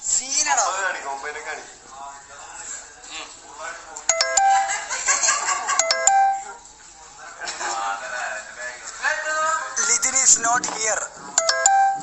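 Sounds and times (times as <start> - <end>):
electronic chime: 4.1 - 4.9, 5.8 - 6.5, 11.4 - 12.0.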